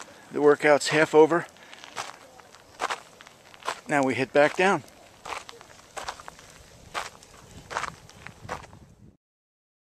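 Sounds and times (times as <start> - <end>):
footsteps crunching on gravel: 0.0 - 8.9.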